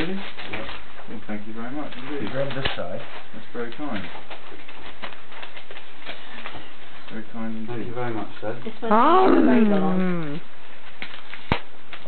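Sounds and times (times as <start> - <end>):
wrapping paper rustling and tearing: 0.0 - 7.3, 10.8 - 12.0.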